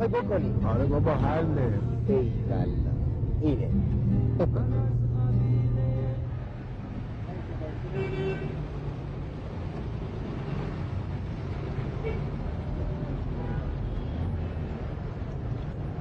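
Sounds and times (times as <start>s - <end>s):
cars going by: 0.0s - 16.0s.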